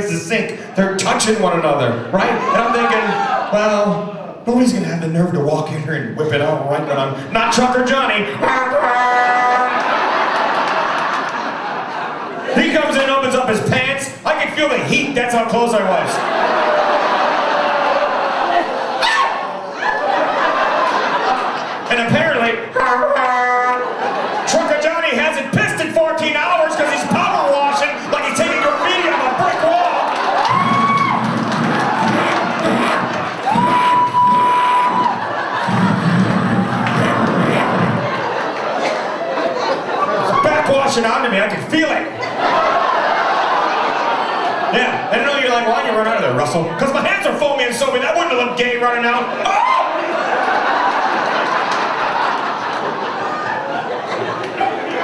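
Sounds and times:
comedian talking: 0:00.0 - 0:10.3, 0:12.3 - 0:31.2, 0:36.8 - 0:51.4
audience laughing: 0:08.3 - 0:13.7, 0:14.7 - 0:47.4, 0:48.4 - 0:55.0
high whoops: 0:30.4 - 0:31.3, 0:33.4 - 0:35.2, 0:49.5 - 0:50.0.

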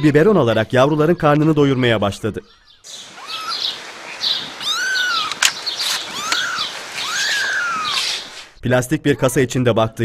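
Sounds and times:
kitten mewing: 0:03.1 - 0:03.8, 0:04.5 - 0:08.4
sharp click: 0:05.3 - 0:05.6.

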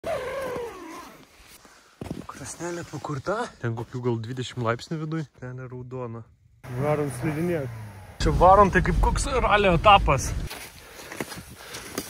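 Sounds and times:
tent zipper pulled open: 0:00.0 - 0:01.6.

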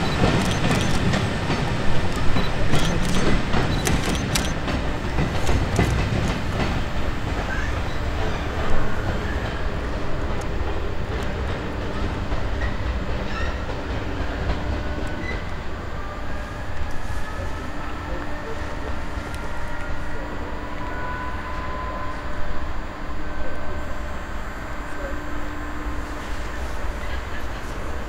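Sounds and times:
train wheels clicking on rail joints: 0:00.0 - 0:15.6
diesel locomotive rumble: 0:00.0 - 0:28.0.

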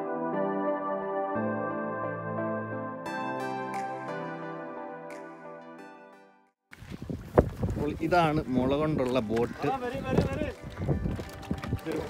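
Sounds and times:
background music: 0:00.0 - 0:06.5
wind on microphone: 0:06.7 - 0:12.0.

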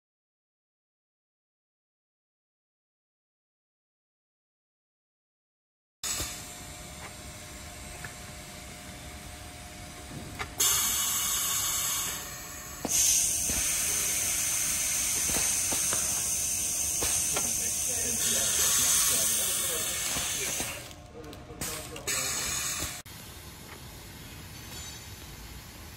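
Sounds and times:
low workshop background: 0:06.0 - 0:25.9
pneumatic valves clicking: 0:10.4 - 0:21.0, 0:21.6 - 0:23.0
compressed air hissing: 0:10.6 - 0:21.0, 0:21.6 - 0:23.1.

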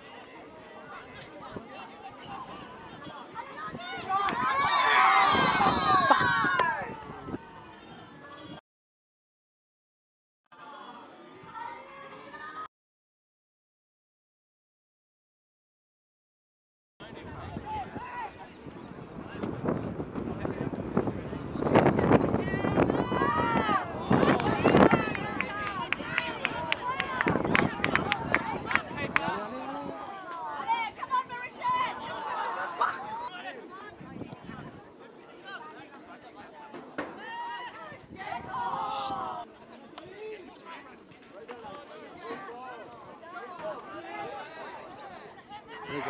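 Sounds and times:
outdoor noise: 0:00.0 - 0:08.6, 0:10.5 - 0:12.7, 0:17.0 - 0:46.0
voices shouting and calling: 0:00.0 - 0:08.6, 0:22.0 - 0:46.0.

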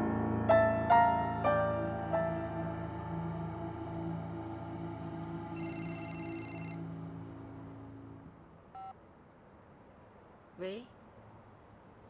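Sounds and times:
soft background music: 0:00.0 - 0:08.5
mobile phone ringtone: 0:05.6 - 0:06.9.

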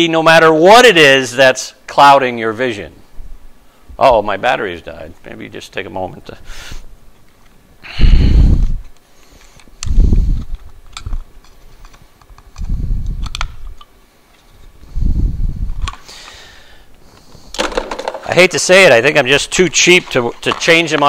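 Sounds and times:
small clicks and fumbling: 0:08.8 - 0:14.7, 0:19.9 - 0:21.0.

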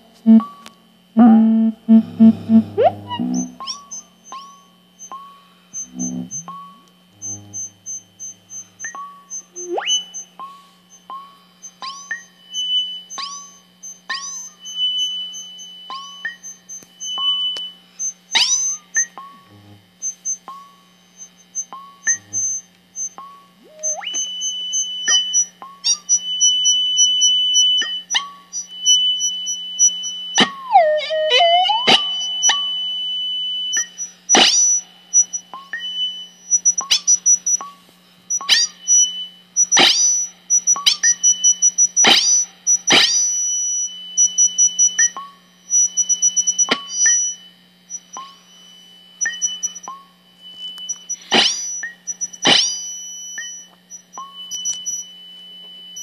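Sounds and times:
steady high electronic tone: 0:00.0 - 0:04.4, 0:05.7 - 0:10.4, 0:22.1 - 0:26.2, 0:28.6 - 0:35.4
low steady hum: 0:00.0 - 0:39.7
synthesizer pitch swoop: 0:01.2 - 0:03.8, 0:09.6 - 0:10.0, 0:23.6 - 0:24.3, 0:30.4 - 0:33.0
electronic chirps falling in pitch: 0:07.2 - 0:12.3, 0:21.2 - 0:37.6.

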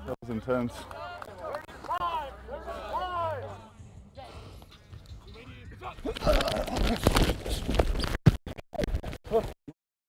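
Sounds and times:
men shouting: 0:02.0 - 0:03.7.

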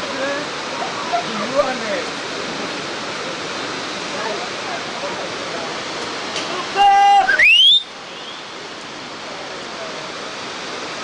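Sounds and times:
rushing wind or water: 0:00.0 - 0:11.0
person yelling: 0:06.5 - 0:07.4.

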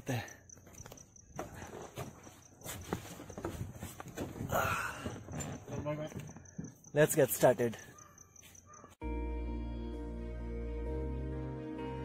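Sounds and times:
knocks and clicks of climbing: 0:00.5 - 0:06.9.

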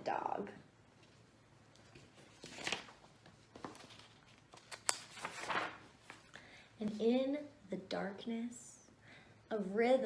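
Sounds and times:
paper pages rustling: 0:01.0 - 0:06.4
sharp paper click: 0:04.6 - 0:05.7.

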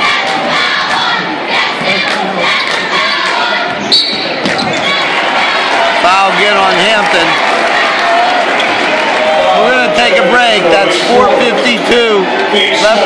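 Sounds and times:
crowd noise: 0:00.0 - 0:13.0
referee whistle: 0:03.8 - 0:05.0.

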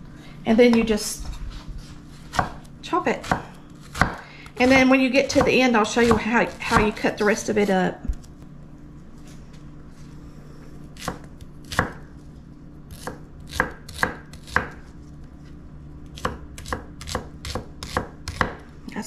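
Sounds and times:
knife chopping on wooden board: 0:02.3 - 0:07.3, 0:11.0 - 0:12.0, 0:12.9 - 0:14.8, 0:16.2 - 0:18.6.

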